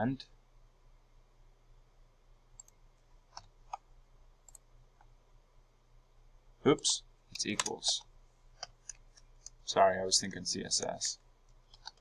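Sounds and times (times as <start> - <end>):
faint computer mouse clicks: 2.6 - 3.8, 4.4 - 5.1, 11.5 - 12.0.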